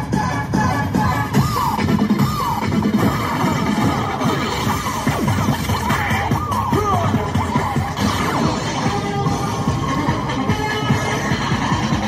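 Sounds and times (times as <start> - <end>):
cheerleading music: 0.0 - 12.0.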